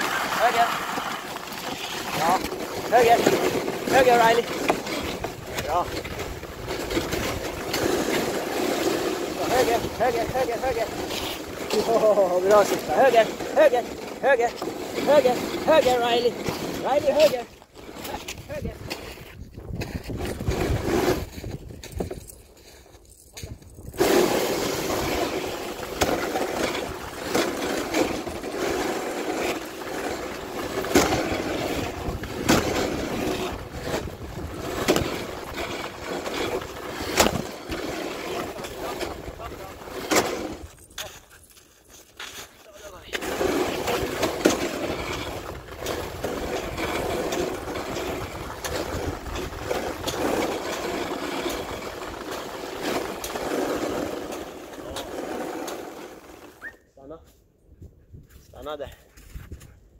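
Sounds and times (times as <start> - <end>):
sharp clicks and knocks from sled: 0.0 - 56.7
sled runners scraping on snow: 0.0 - 56.7, 58.2 - 59.8.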